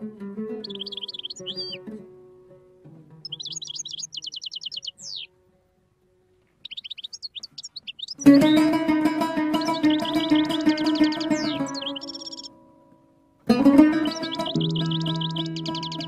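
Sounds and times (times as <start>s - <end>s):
oud plucked: 0.0s - 6.7s, 7.4s - 16.0s
songbird chirping: 0.0s - 16.0s.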